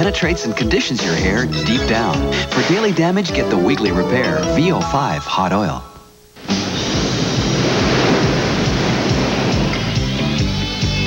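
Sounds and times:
ocean waves crashing: 0:06.4 - 0:10.6.

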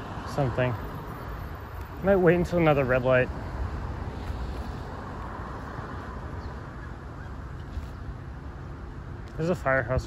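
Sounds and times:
car passing: 0:00.0 - 0:09.8
road traffic noise: 0:00.0 - 0:10.0.

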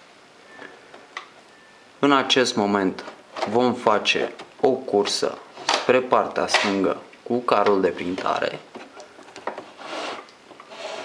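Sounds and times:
printer carriage sliding along rail: 0:09.6 - 0:11.0.

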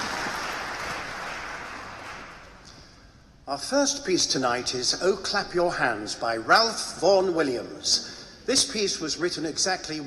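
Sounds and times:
audience applause: 0:00.0 - 0:02.5.

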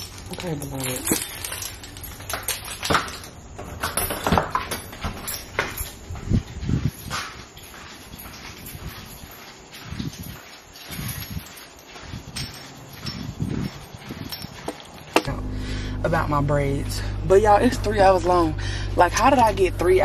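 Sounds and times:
footsteps thumping: 0:02.9 - 0:15.6.

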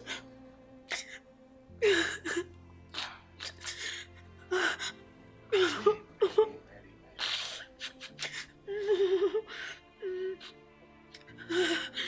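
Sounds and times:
low music drone: 0:00.0 - 0:12.0.

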